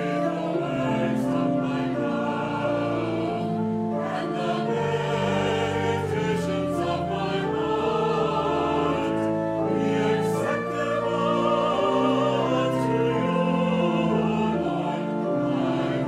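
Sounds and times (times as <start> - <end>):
mixed choir singing: 0.0 - 16.0.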